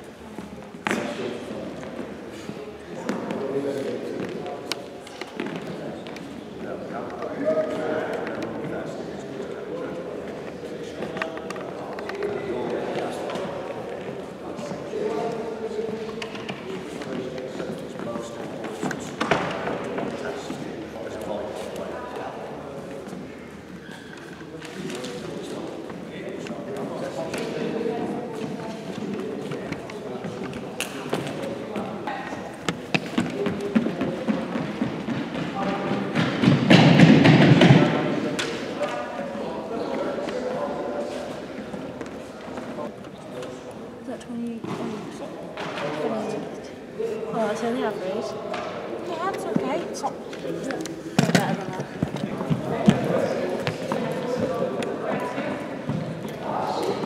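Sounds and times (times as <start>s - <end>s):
background chatter: 0.0s - 57.0s
people's voices: 0.0s - 57.0s
shoe squeaks and clicks: 23.8s - 24.4s
echoing thumps on hall floor: 32.6s - 38.6s, 51.1s - 56.2s.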